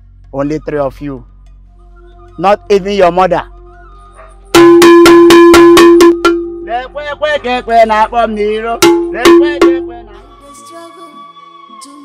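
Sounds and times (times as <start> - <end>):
metal bell struck rapidly: 4.6 - 6.7, 8.8 - 10.0.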